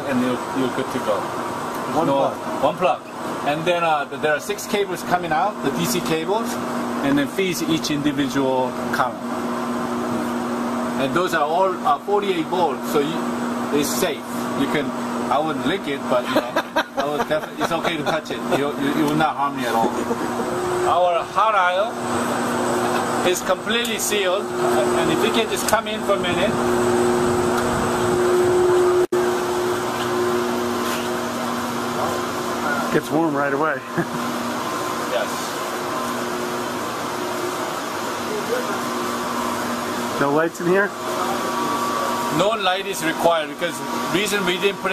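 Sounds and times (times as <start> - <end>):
constant low hum: 0.0 - 36.6
server fans whirring: 0.0 - 44.9.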